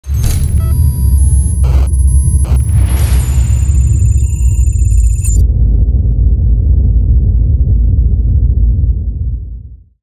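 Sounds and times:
high electronic beeps and tones: 0.1 - 5.4
deep rumbling drone: 0.1 - 10.0.

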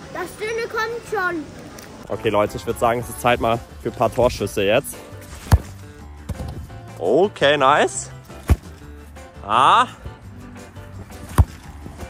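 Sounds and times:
background music: 2.0 - 12.0
football kick thump: 5.3 - 6.7, 8.4 - 8.8, 11.2 - 11.7.

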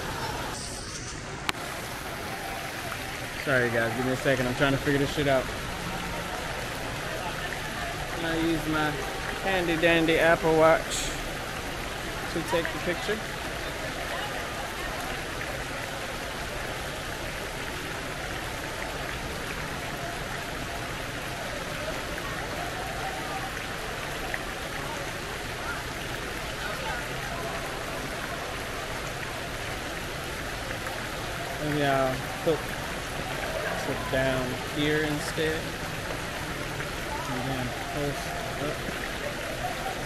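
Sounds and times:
faint voices: 0.0 - 40.0
rush of falling water: 0.0 - 40.0.

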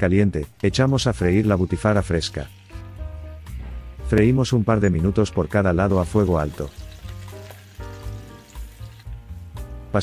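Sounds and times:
sausage sizzling in frying pan: 0.6 - 9.9.

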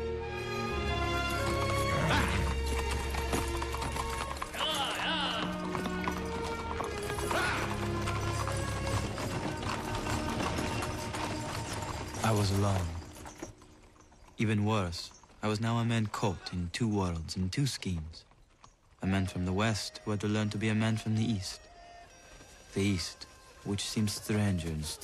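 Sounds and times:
horse hooves clip-clopping: 0.0 - 25.0
horses whinnying: 0.5 - 14.2.

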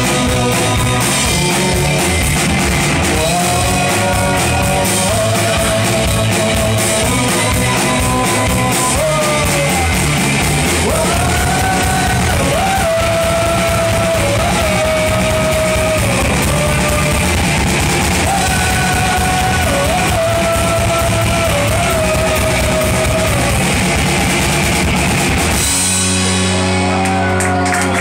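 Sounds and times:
live rock band playing: 0.0 - 28.0.

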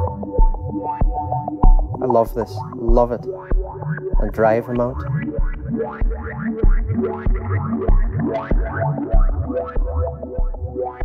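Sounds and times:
gated synthesizer notes: 0.0 - 11.0.

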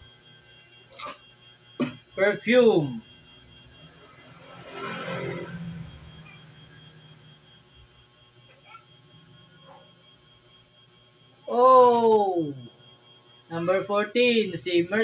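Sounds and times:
faint steady hum: 5.7 - 15.0.

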